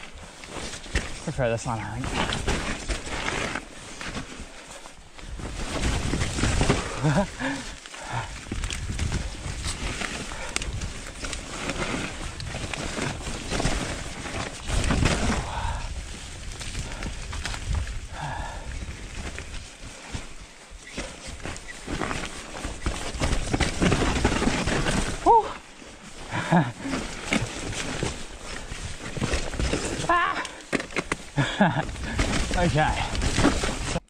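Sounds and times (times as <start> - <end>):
tyre noise on dirt: 0.0 - 34.0
bike rattling and knocking: 5.4 - 15.8, 21.0 - 25.4, 26.3 - 34.0.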